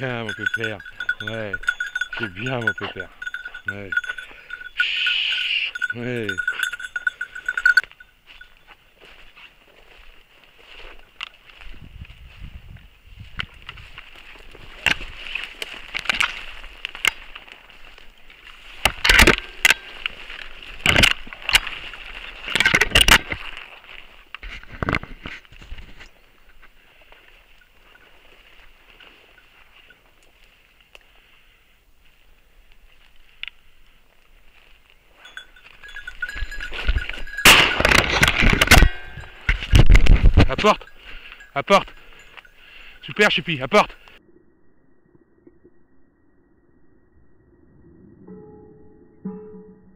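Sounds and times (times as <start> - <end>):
rustling through dry brush: 0.0 - 43.2
thin electronic tone: 44.2 - 49.9.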